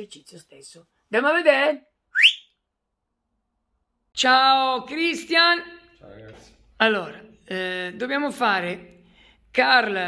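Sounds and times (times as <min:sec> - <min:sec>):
rising whistle: 0:02.1 - 0:02.5.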